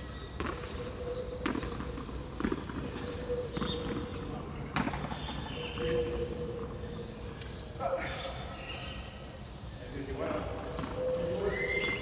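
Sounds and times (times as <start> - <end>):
voices: 2.7 - 12.0.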